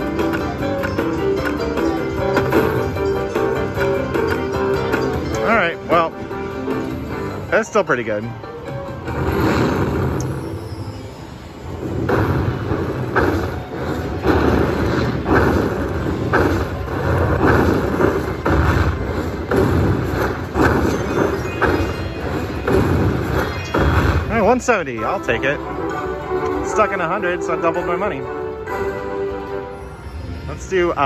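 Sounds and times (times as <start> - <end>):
rhythmic thumping beat: 0.0 - 7.1, 12.0 - 25.4.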